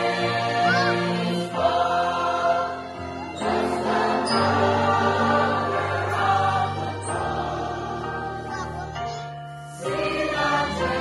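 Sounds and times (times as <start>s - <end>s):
choir singing a hymn: 0.0s - 8.8s, 9.7s - 11.0s
small orchestra playing: 0.0s - 11.0s.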